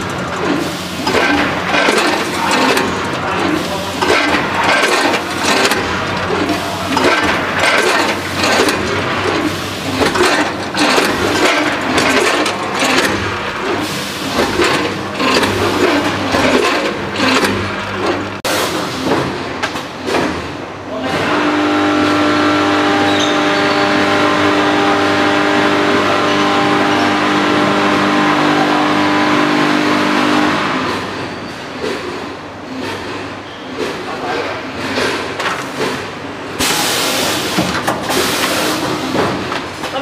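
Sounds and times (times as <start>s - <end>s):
machine rattling and clatter: 0.0s - 20.6s.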